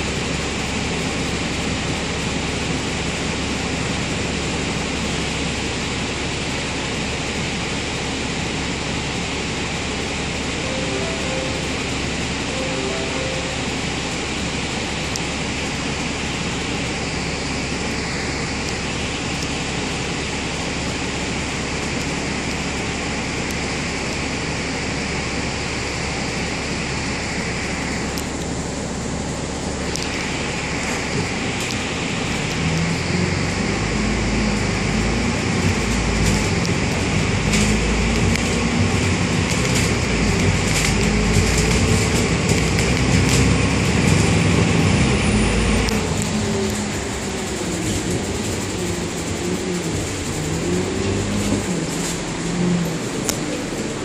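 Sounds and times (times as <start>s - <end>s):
bus diesel engine: 0.0s - 54.0s.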